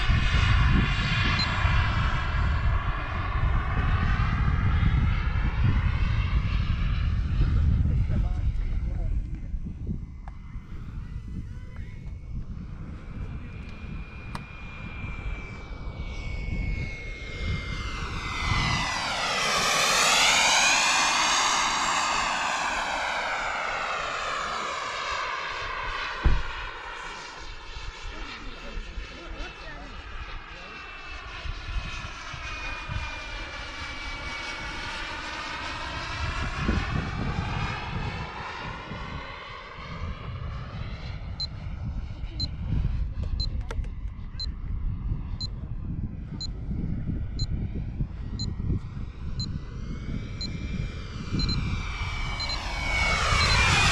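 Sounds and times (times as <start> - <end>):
jet engine whining: 0.0 - 53.9
wind rumble on microphone: 0.0 - 53.9
short beeps: 53.4 - 53.6.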